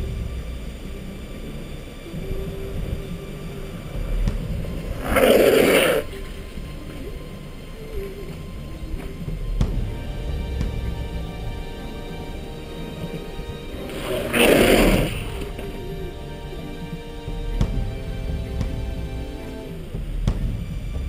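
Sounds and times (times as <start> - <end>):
background music: 0.0 - 21.0
low driving rumble: 0.0 - 21.0
wheels sliding across asphalt: 0.9 - 9.5, 12.6 - 17.4.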